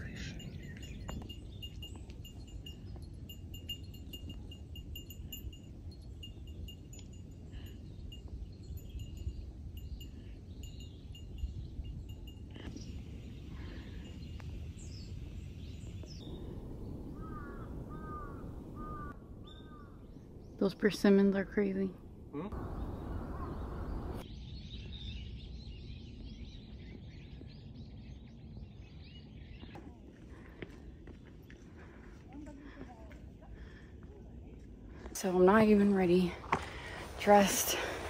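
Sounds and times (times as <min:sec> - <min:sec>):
small bell tinkling: 0:00.0 - 0:12.7
bird calls: 0:12.6 - 0:20.7, 0:22.3 - 0:24.2.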